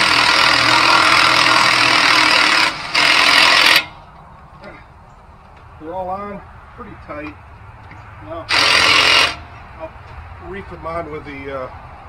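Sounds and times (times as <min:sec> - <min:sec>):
impact wrench rattling: 0:00.0 - 0:04.0.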